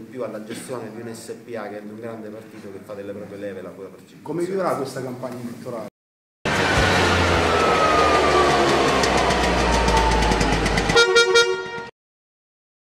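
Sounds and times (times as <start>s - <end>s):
engine running falling in pitch: 6.5s - 11.9s
rapid horn toots: 10.7s - 11.9s.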